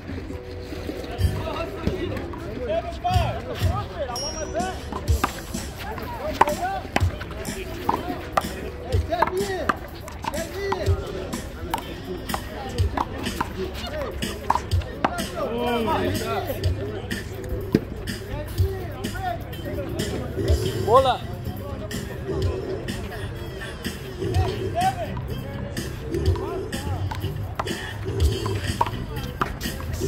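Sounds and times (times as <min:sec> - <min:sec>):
background music: 0:00.0 - 0:30.0
voices: 0:00.0 - 0:30.0.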